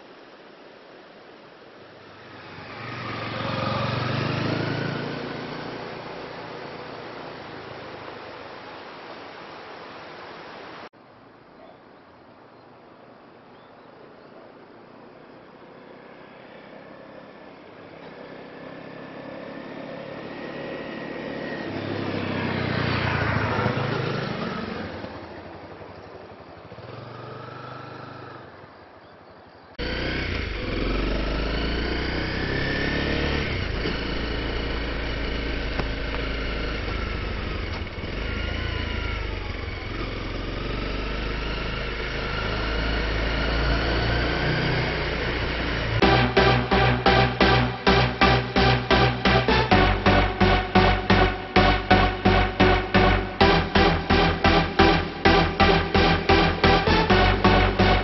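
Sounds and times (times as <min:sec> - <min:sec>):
motorcycle passing by: 0:02.0 - 0:08.5, 0:15.1 - 0:58.0
motorcycle engine running close up: 0:18.1 - 0:28.7, 0:29.8 - 0:46.1.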